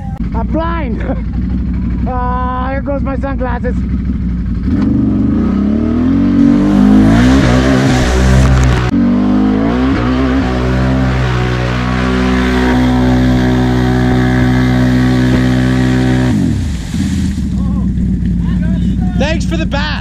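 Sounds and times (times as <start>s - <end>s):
atv engine revving: 0.0s - 20.0s
spraying mud and water hiss: 16.6s - 17.4s.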